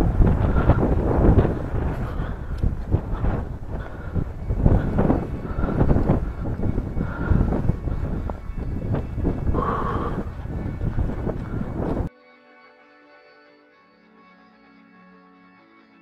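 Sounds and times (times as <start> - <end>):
footsteps in dry grass: 0.0 - 12.1
wind buffeting microphone: 0.0 - 12.1.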